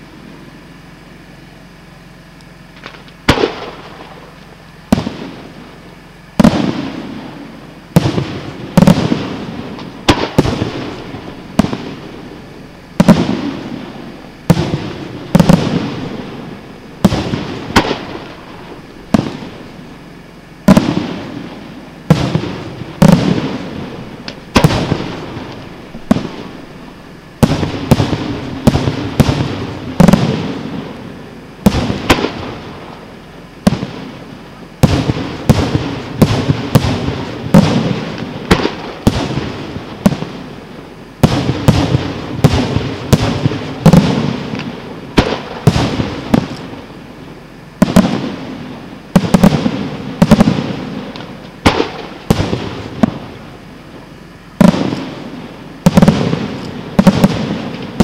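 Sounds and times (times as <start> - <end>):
fireworks bursting: 0.0 - 58.0.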